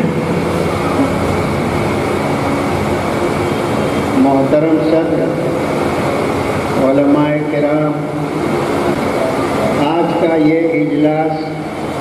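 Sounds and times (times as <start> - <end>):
faint high whine: 0.0 - 12.0
hall background noise: 0.0 - 12.0.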